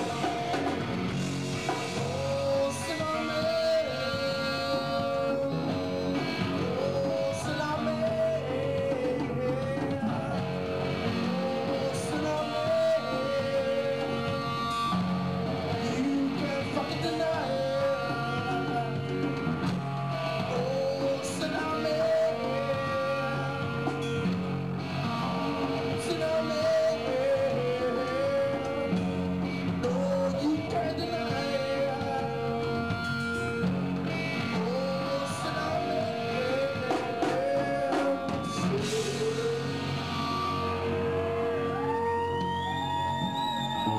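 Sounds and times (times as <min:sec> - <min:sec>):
drums: 0:00.0 - 0:43.9
electric guitar: 0:00.0 - 0:43.9
harmonica wailing: 0:30.8 - 0:43.9.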